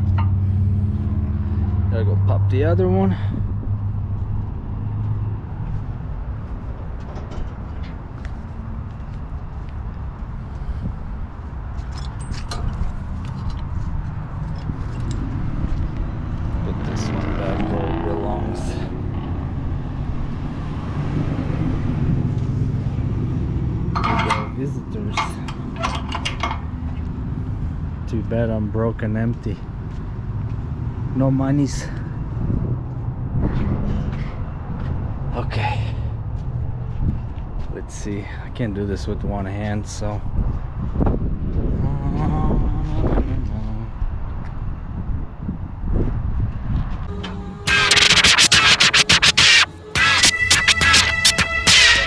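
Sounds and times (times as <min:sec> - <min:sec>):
sharp metallic clanks: 0:23.9 - 0:26.7.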